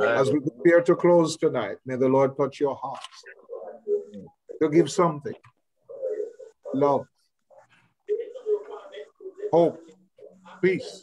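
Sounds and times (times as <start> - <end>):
murmuring voice over video call: 0.0 - 11.0.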